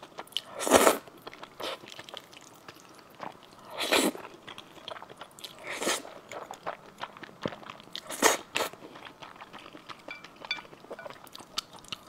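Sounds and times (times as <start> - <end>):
wet chewing clicks: 0.0 - 12.0.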